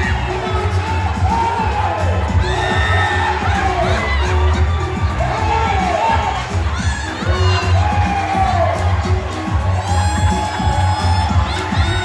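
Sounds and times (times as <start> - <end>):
audience cheering and shouting: 0.0 - 12.0
upbeat music with heavy bass: 0.0 - 12.0
high whoops: 9.8 - 12.0.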